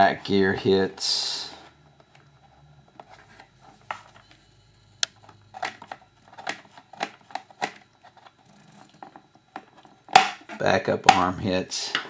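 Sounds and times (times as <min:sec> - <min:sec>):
plastic parts clicking and tapping: 0:05.0 - 0:08.3.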